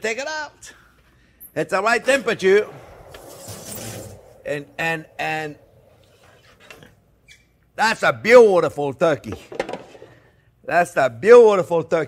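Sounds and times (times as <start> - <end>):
man speaking: 1.6 - 3.0, 4.4 - 5.8.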